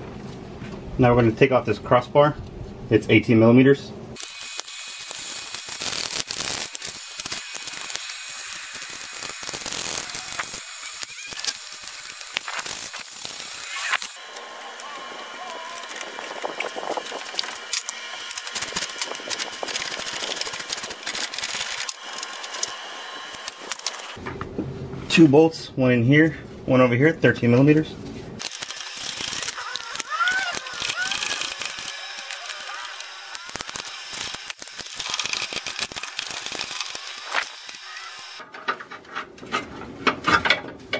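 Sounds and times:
socket ratchet clicking: 0:28.4 - 0:37.9.

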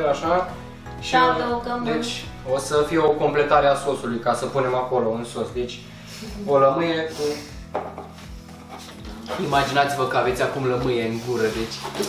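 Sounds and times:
faint background music: 0:00.0 - 0:12.0
handling and rubbing noises: 0:08.0 - 0:12.0.

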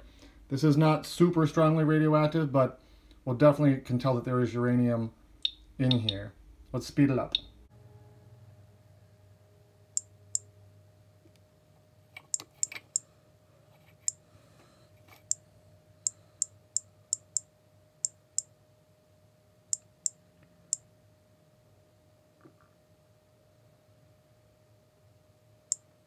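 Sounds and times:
geiger counter clicking: 0:05.4 - 0:06.2, 0:12.2 - 0:13.0, 0:16.4 - 0:18.5.

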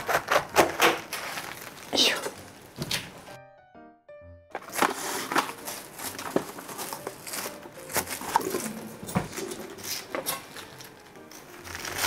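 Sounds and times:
knife cutting cabbage on board: 0:00.0 - 0:01.3
cling film crinkling: 0:00.0 - 0:03.3, 0:04.6 - 0:12.0.

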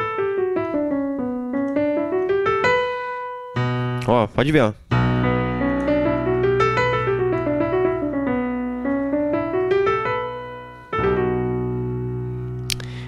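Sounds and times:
digital piano playing a scale: 0:00.0 - 0:04.2, 0:04.9 - 0:13.0.

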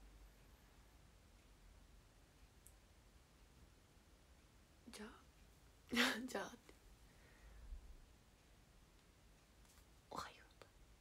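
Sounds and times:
woman whispering: 0:04.9 - 0:05.3, 0:10.1 - 0:10.8.

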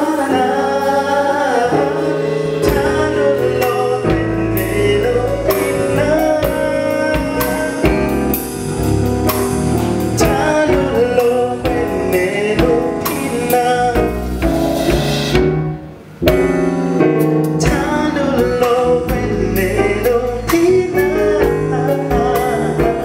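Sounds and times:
man singing lead vocals: 0:00.0 - 0:08.6, 0:10.1 - 0:14.6, 0:17.6 - 0:23.0
live band playing: 0:00.0 - 0:23.0.

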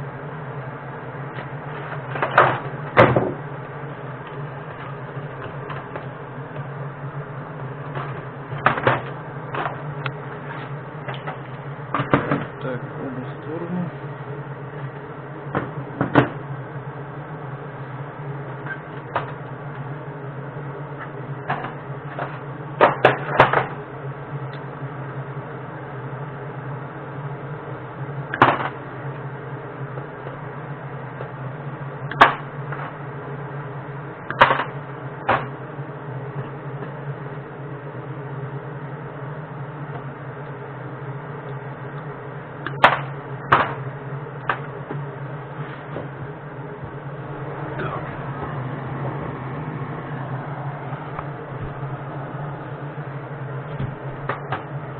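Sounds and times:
steady low hum: 0:00.0 - 0:54.9.

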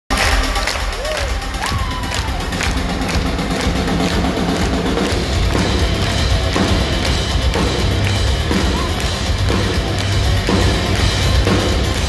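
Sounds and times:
crowd cheering and shouting: 0:00.1 - 0:12.0
heavy rock band playing live: 0:00.1 - 0:12.0.

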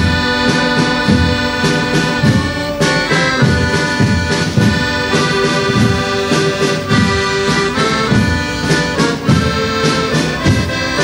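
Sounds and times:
accordion playing chords: 0:00.0 - 0:11.0
snare and bass drums marching: 0:00.0 - 0:11.0.

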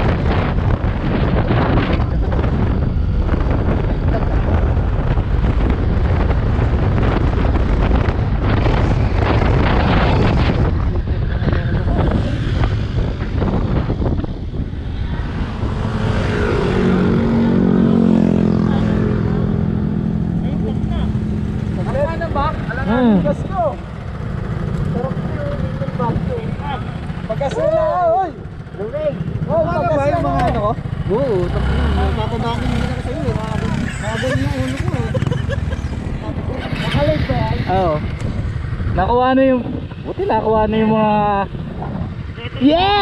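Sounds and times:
road noise: 0:00.0 - 0:43.0
wind rushing over microphone: 0:00.0 - 0:43.0
scooter engine hum: 0:00.8 - 0:43.0.

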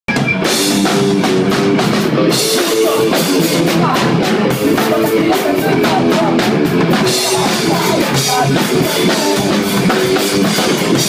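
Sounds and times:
live rock band: 0:00.1 - 0:11.0.

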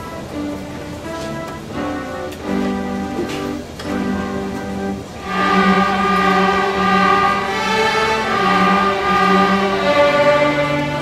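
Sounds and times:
string orchestra playing held notes: 0:00.0 - 0:11.0.

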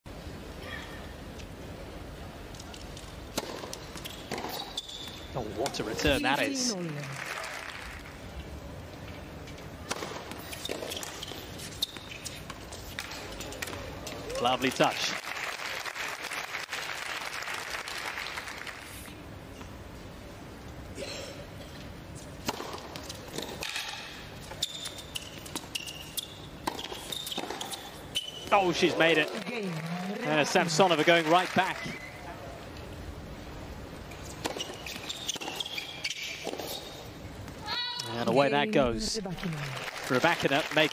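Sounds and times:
indoor arena background: 0:00.1 - 0:40.9
rackets striking tennis ball: 0:03.3 - 0:05.0
shoes squeaking on court: 0:03.4 - 0:05.3, 0:09.9 - 0:14.2, 0:22.2 - 0:29.4, 0:31.8 - 0:32.3, 0:34.1 - 0:38.2.

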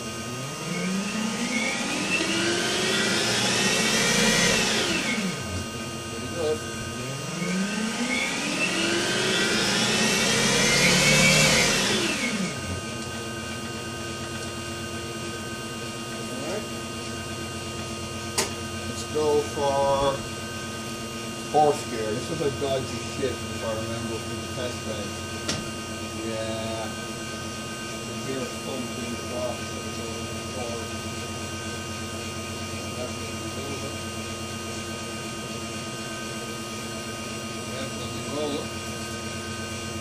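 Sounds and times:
electric motor whining: 0:00.0 - 0:40.0.

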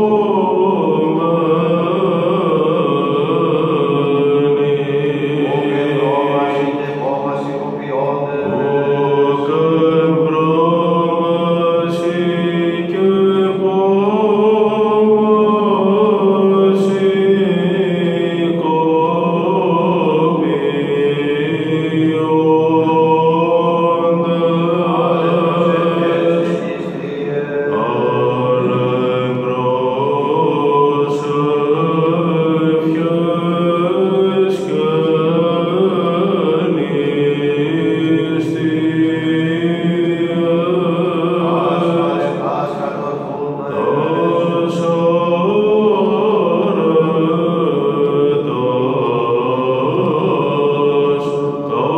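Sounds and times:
steady low held tone: 0:00.0 - 0:11.4, 0:21.6 - 0:38.9
man chanting solo: 0:04.4 - 0:21.8, 0:23.4 - 0:47.5
low held drone note: 0:05.2 - 0:09.6.

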